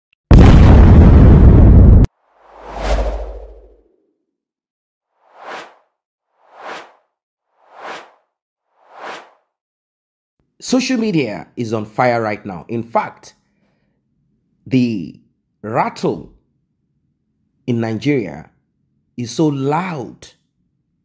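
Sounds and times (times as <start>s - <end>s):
deep boom: 0.3s - 3.6s
whoosh: 2.3s - 4.0s, 5.2s - 9.5s
short whooshes: 2.4s - 3.9s, 5.2s - 9.5s.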